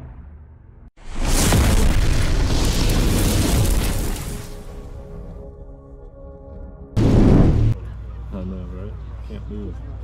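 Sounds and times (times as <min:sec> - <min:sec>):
explosion boom with rumbling blast: 0:01.1 - 0:05.0, 0:07.0 - 0:07.8.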